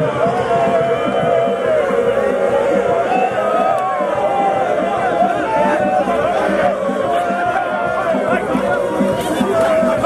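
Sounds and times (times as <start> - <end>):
crowd chatter: 0.0 - 10.0
crowd singing: 0.0 - 10.0
music: 0.0 - 10.0.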